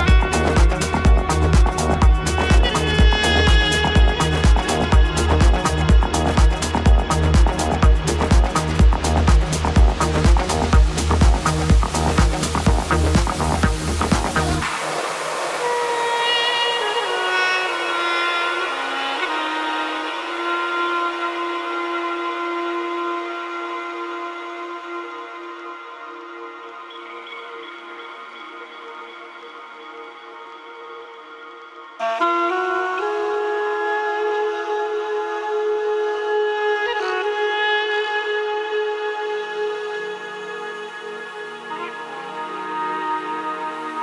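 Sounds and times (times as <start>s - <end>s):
held synth pad chord: 0.0s - 32.1s, 37.4s - 44.0s.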